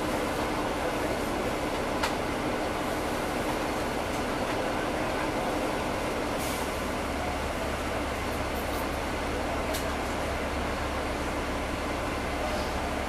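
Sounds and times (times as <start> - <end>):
bus diesel engine drone: 0.0 - 13.0.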